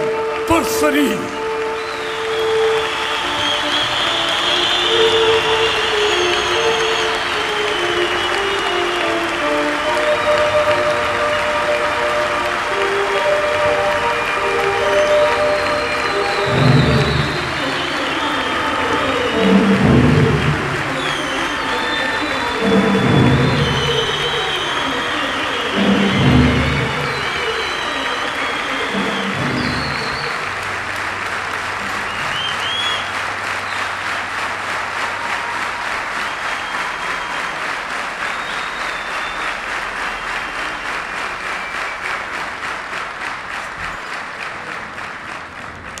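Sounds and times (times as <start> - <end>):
band music: 0.0 - 1.7
audience applauding: 0.0 - 46.0
rhythmic clapping: 0.0 - 46.0
high whistles: 1.2 - 9.0, 13.4 - 30.6, 31.8 - 34.0, 36.2 - 42.3.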